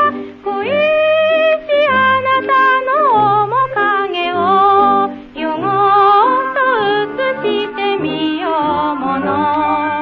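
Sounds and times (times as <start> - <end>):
instrumental accompaniment: 0.0 - 10.0
woman singing with vibrato: 0.0 - 10.0.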